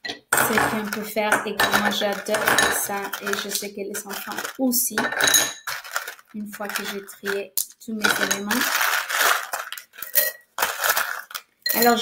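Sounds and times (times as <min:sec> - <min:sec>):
dried pasta and rice rattling: 0:00.4 - 0:12.0.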